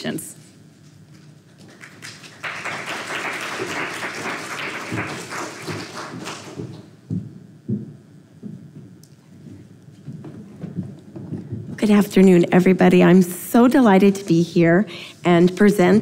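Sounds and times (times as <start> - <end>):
audience applauding: 1.6 - 6.9.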